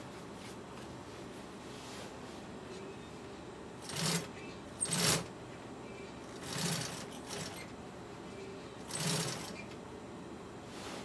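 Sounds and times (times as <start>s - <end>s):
sewing machine stitching: 3.8s - 5.3s, 6.4s - 7.7s, 8.8s - 9.8s.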